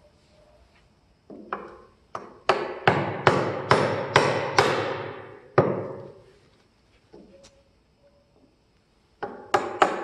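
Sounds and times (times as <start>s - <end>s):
hammer striking chisel into wood: 1.3s - 6.0s, 9.2s - 10.0s.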